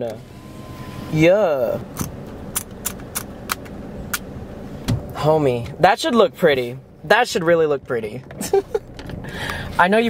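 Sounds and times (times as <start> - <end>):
low hum inside a car: 0.0 - 10.0.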